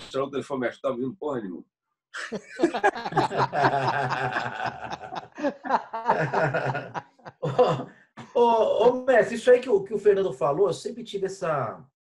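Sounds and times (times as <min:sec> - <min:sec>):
man laughing heartily: 0:02.2 - 0:09.0.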